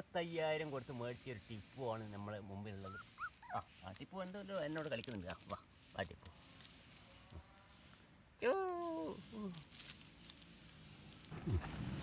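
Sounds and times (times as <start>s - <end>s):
puppy whimpering and yipping: 2.8s - 3.8s.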